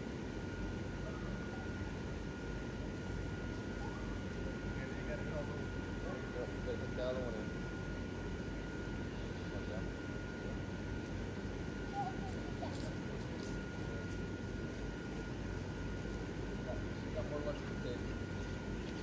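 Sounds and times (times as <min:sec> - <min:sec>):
blower fans droning: 0:00.0 - 0:19.0
thin steady whine: 0:00.0 - 0:19.0
faint voices: 0:00.8 - 0:19.0.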